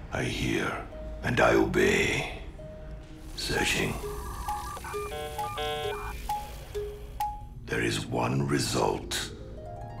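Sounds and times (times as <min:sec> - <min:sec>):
electronic beeps and chimes: 0:03.9 - 0:07.1.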